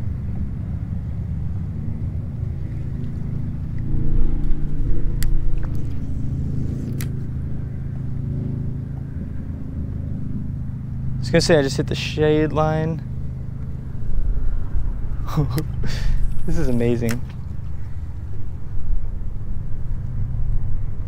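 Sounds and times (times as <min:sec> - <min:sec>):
wind buffeting microphone: 0:00.0 - 0:11.2, 0:12.4 - 0:21.0.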